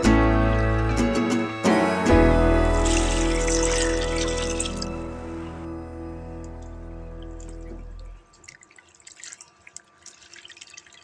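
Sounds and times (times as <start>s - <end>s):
background music: 0.0s - 8.2s
water splashing and dripping: 2.7s - 5.0s, 6.4s - 11.0s.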